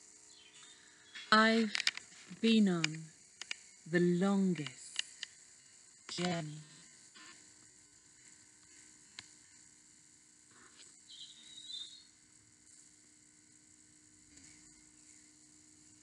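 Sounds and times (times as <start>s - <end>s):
faint high chirp: 11.1s - 12.2s.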